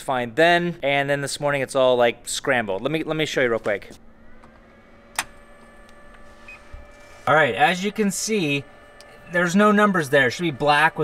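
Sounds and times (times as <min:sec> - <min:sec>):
faint electronic whine: 0:00.0 - 0:11.0.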